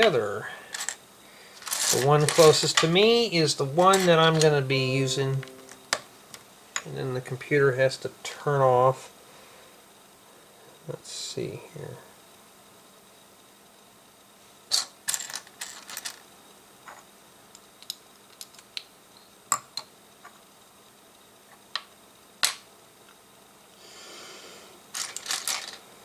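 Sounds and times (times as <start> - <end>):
rustle of plastic pieces: 0.7 - 2.9, 14.7 - 16.3, 24.9 - 25.9.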